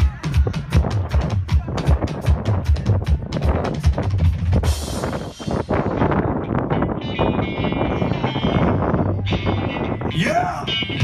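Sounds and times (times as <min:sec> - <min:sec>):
kick drum beats: 0:00.0 - 0:04.7
dense drumming: 0:00.0 - 0:06.2.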